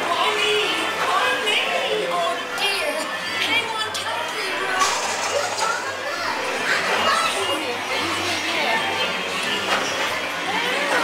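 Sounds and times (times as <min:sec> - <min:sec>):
indistinct recorded voices: 0:00.0 - 0:11.0
people chatting: 0:00.0 - 0:11.0.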